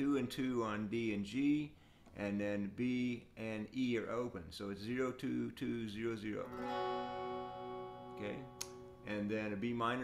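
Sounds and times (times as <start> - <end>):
electric guitar chord ringing: 6.5 - 9.1.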